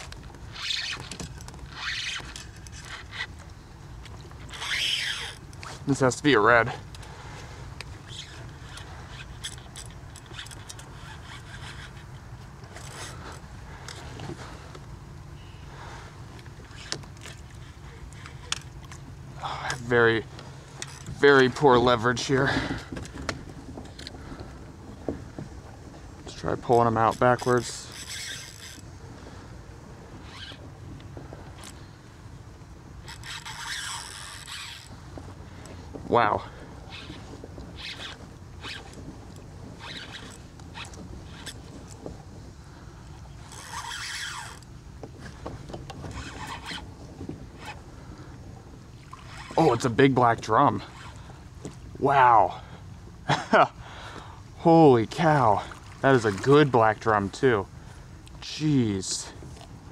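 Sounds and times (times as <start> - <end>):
fishing tackle clicks and rattles: 0.0 - 7.2, 7.8 - 15.0, 16.3 - 24.6, 26.2 - 29.0, 30.3 - 31.9, 33.0 - 42.5, 43.1 - 47.8.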